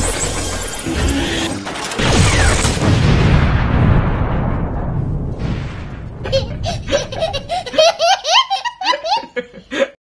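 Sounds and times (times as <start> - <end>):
young child laughing: 6.2 - 10.0.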